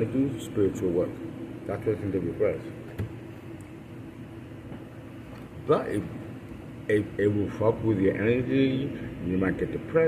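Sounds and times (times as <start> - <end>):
faint hum: 0.0 - 10.0
low mechanical rumble: 0.0 - 10.0.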